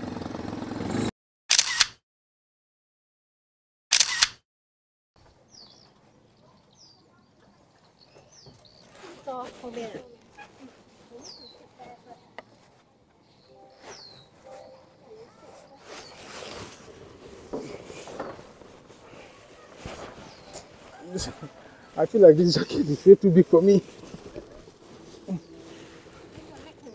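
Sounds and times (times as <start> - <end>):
faint voices: 6.3 - 26.9
bird whistling call: 13.7 - 14.6.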